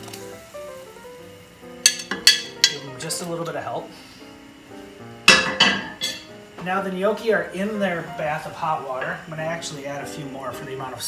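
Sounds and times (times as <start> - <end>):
faint background music: 0.0 - 11.0
kitchenware knocks with ring: 5.3 - 6.2.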